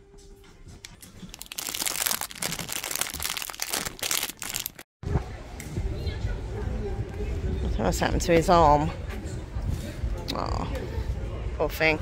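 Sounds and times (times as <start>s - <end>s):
plastic crinkling: 0.9s - 4.9s.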